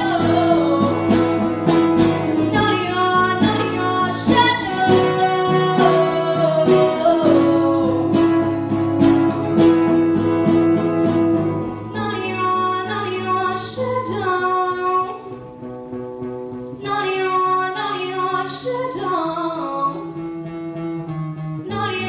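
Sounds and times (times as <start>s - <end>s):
girl singing: 0.0s - 8.9s, 11.7s - 15.6s, 16.8s - 20.2s, 21.6s - 22.0s
strummed acoustic guitar: 0.0s - 22.0s.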